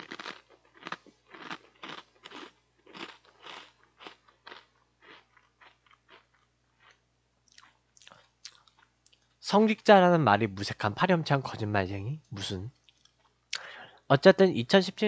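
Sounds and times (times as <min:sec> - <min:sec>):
person chewing crunchy food: 0:00.0 - 0:08.9.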